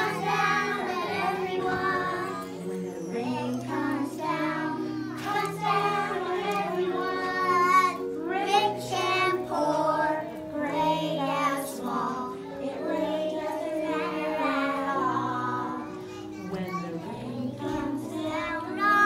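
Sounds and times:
children singing in unison: 0:00.0 - 0:19.0.

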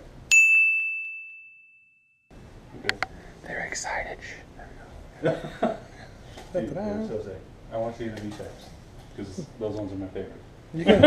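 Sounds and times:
metallic bell-like ding: 0:00.3 - 0:02.1.

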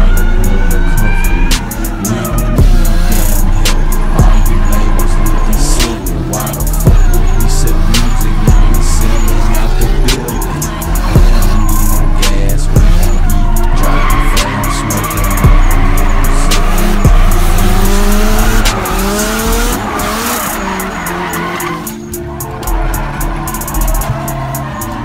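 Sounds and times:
car engines revving: 0:00.0 - 0:25.0
hip-hop beat: 0:00.0 - 0:25.0
tyres squealing: 0:00.0 - 0:25.0.

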